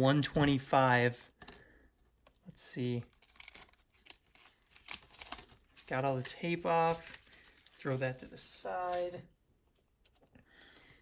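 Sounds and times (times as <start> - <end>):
plastic crinkling: 3.0 - 9.3
tape peeling off plastic: 3.1 - 5.9.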